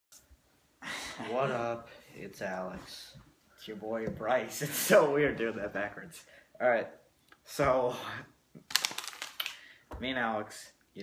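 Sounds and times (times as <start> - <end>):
small hard objects clicking: 8.7 - 9.6.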